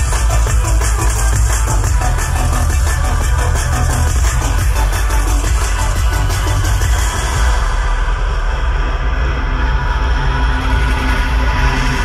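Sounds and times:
bass-heavy electronic dance music: 0:00.0 - 0:12.0
deep sub-bass: 0:00.0 - 0:12.0.

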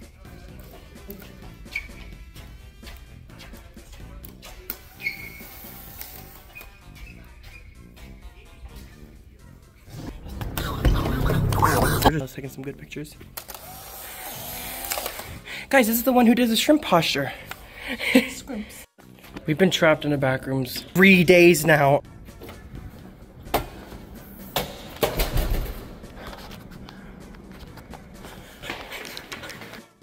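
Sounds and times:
camera shutter clicking: 0:14.7 - 0:15.3.

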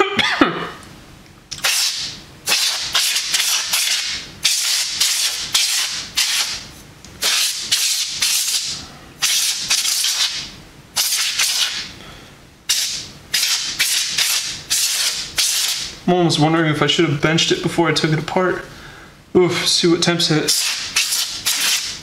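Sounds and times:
compressed air hissing blasts: 0:01.6 - 0:06.6, 0:07.2 - 0:12.0, 0:12.7 - 0:15.9, 0:20.5 - 0:22.0.

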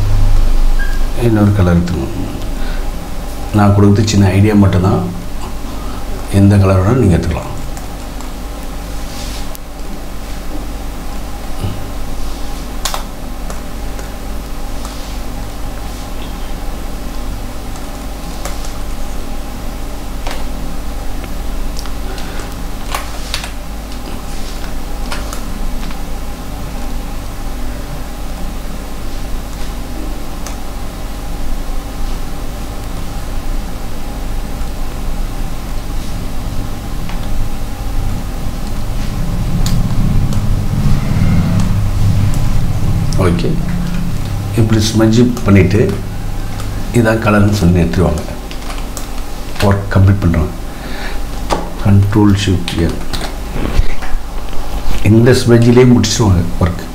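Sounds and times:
electrical hum and fan drone: 0:00.0 - 0:56.9.

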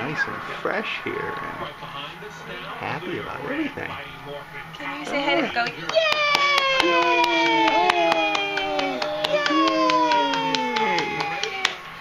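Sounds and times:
hand clapping: 0:05.6 - 0:12.0
woman cheering: 0:05.9 - 0:11.8.

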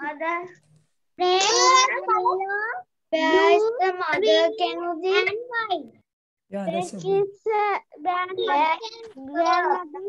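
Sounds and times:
child's sing-song voice: 0:01.2 - 0:05.9, 0:06.7 - 0:10.0.

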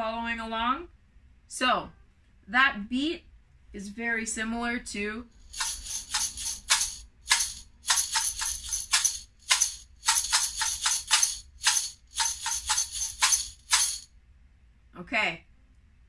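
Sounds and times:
glass jar shaker rattling: 0:05.4 - 0:14.1.

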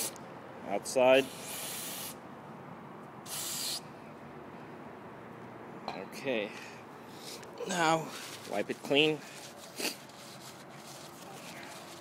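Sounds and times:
aerosol spray hiss: 0:01.3 - 0:02.2, 0:03.3 - 0:03.8.

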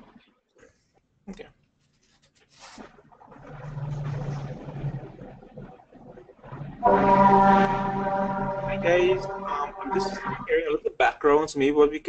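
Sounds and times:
steady low hum: 0:03.3 - 0:10.7.

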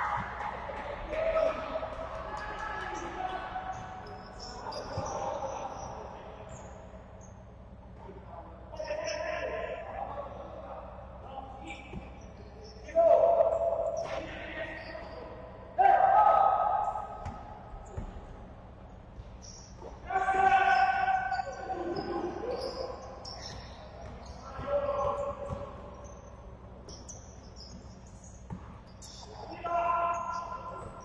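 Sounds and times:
players shouting: 0:00.0 - 0:06.2, 0:15.8 - 0:17.6, 0:19.9 - 0:26.0
basketball bouncing on wooden court: 0:17.2 - 0:18.4, 0:21.9 - 0:29.2.

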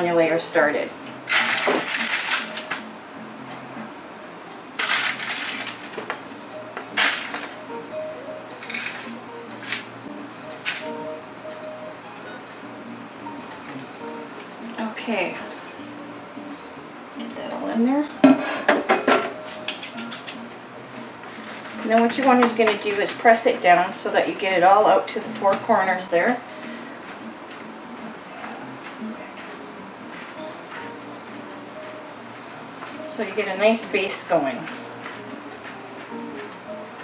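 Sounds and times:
plucked string instrument music: 0:01.0 - 0:37.0
hands crinkling foil pan: 0:01.3 - 0:02.8, 0:04.8 - 0:06.0, 0:07.0 - 0:07.6.

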